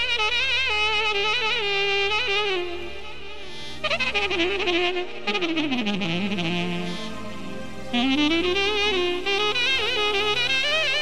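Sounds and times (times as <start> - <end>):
reed wind instrument playing: 0.0 - 11.0.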